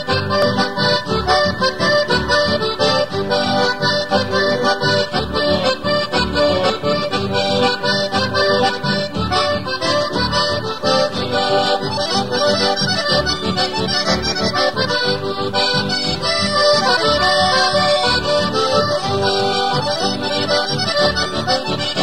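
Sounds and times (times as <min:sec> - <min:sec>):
accordion playing: 0:00.0 - 0:22.0
double bass: 0:00.0 - 0:22.0
guitar: 0:00.0 - 0:22.0.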